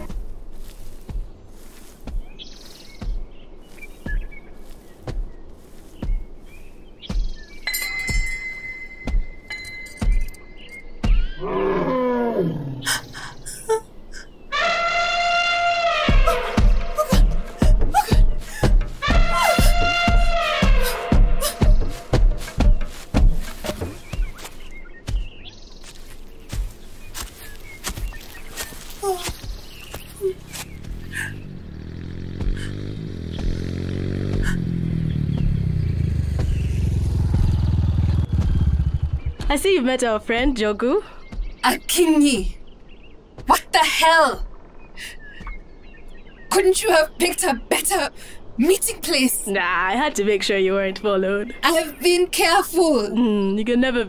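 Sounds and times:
dramatic music with drum beat: 9.0 - 10.4, 11.0 - 11.4, 16.0 - 25.4, 32.3 - 39.8
motorcycle engine approaching: 28.8 - 39.5.

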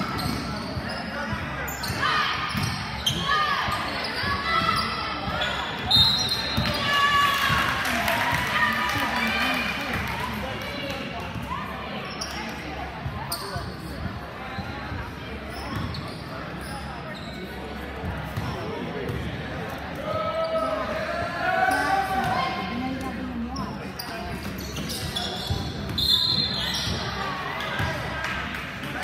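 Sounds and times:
echoing voices in a hall: 0.0 - 29.0.

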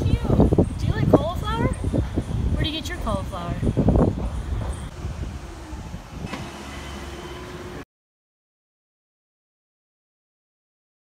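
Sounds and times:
low outdoor rumble: 0.0 - 7.8
steady low hum: 0.0 - 7.8.

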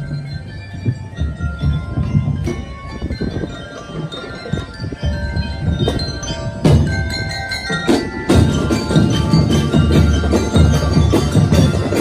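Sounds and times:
bell lyres playing melody: 0.0 - 12.0
steady drum beat: 5.0 - 12.0.

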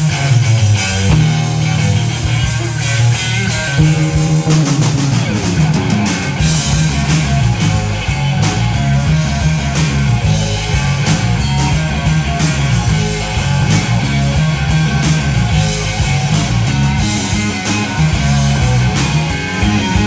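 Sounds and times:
bass guitar: 0.0 - 20.0
drum kit with cymbals: 0.0 - 20.0
electric guitar: 0.0 - 20.0.

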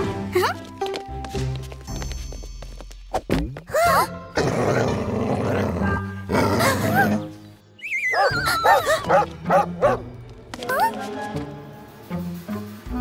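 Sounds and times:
background music: 0.0 - 13.0
cartoon dog barking: 8.2 - 10.0.

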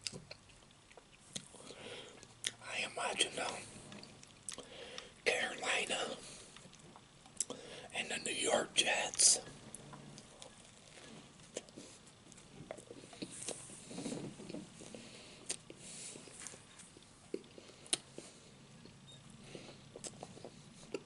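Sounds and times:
chewing bread: 0.0 - 2.6, 3.3 - 5.2, 9.7 - 21.0.

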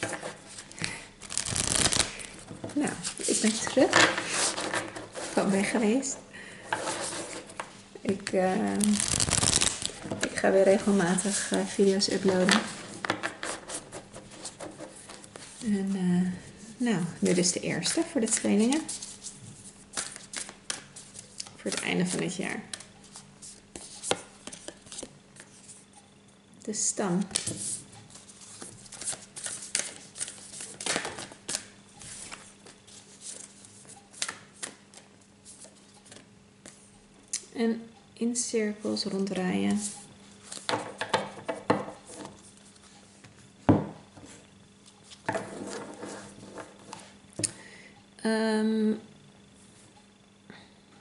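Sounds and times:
cards shuffled by hand: 0.0 - 2.4, 8.6 - 10.3.

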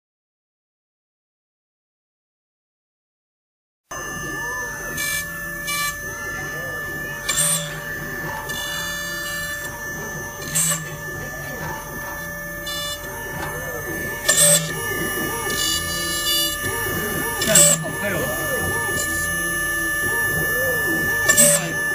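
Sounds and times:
router spindle high whine: 3.9 - 21.9
voices murmuring: 3.9 - 21.9.

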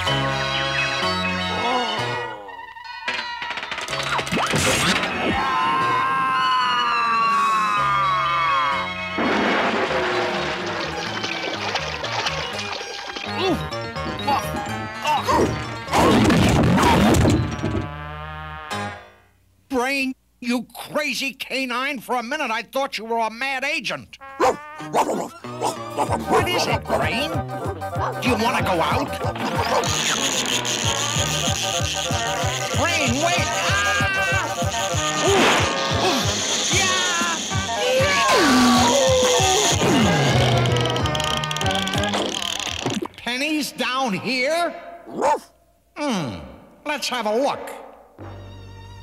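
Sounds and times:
background music with bass: 24.3 - 30.2
cartoon mechanical whirr: 29.3 - 43.0.

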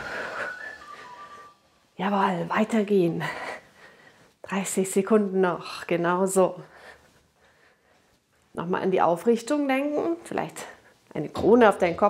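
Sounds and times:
breathy hiss: 0.0 - 1.7
person whistling: 0.0 - 1.8.

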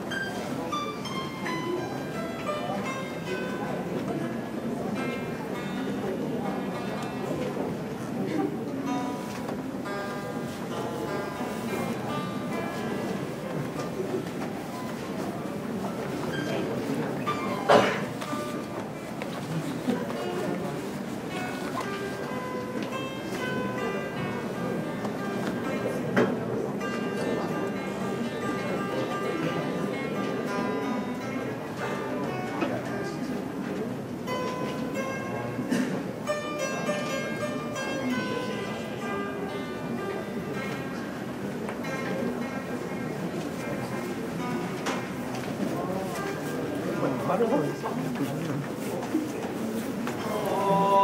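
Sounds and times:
plucked zither notes: 0.0 - 51.0.

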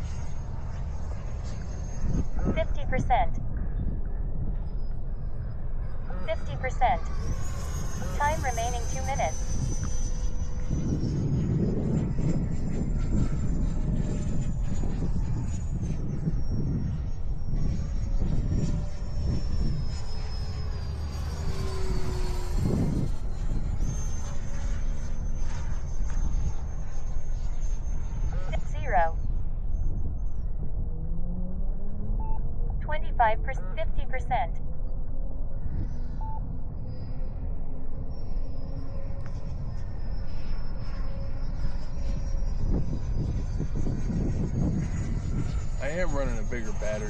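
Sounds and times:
wind buffeting microphone: 0.0 - 8.2, 9.3 - 32.1, 39.2 - 47.0
model jet high whine: 0.0 - 47.0.

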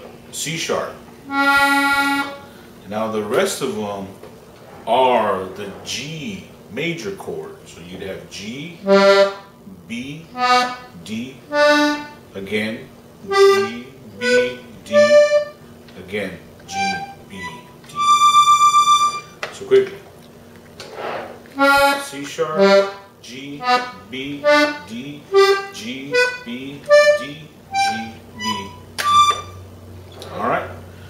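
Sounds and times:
button accordion notes: 1.2 - 2.5, 8.8 - 9.6, 10.3 - 12.3, 13.2 - 15.6, 16.6 - 19.4, 21.5 - 29.7
breathy rush of noise: 20.8 - 21.5.

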